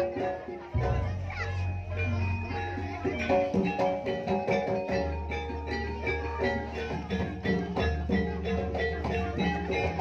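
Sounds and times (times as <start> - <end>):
children's voices: 0.0 - 10.0
struck metallophone notes: 0.0 - 10.0.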